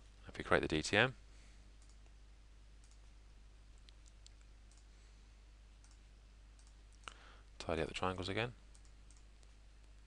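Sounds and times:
computer mouse clicks: 1.8 - 2.1, 2.8 - 3.1, 3.8 - 4.9, 5.8 - 6.0, 6.6 - 7.2, 8.7 - 10.0.

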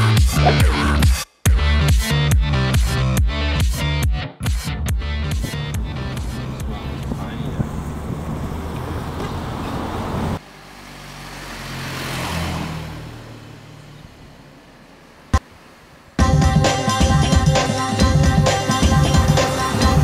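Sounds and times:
street ambience: 0.0 - 3.1, 3.8 - 20.0
passing road vehicle: 5.3 - 16.2.

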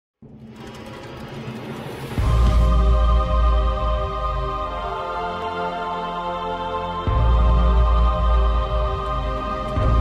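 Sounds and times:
airy intro music over low tones: 0.2 - 10.0.

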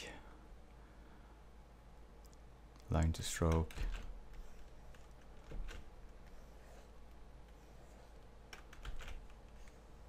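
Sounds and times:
faint low hum: 0.0 - 10.0
computer keys clicking: 8.5 - 9.6.

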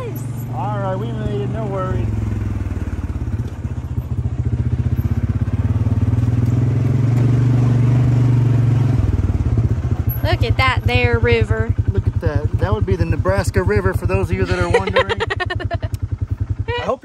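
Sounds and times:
vehicle engine running: 0.0 - 17.0.

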